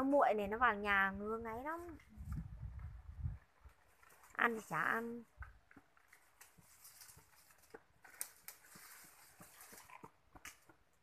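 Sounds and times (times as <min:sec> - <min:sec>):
faint ticks and rustles: 0:05.2 - 0:10.8.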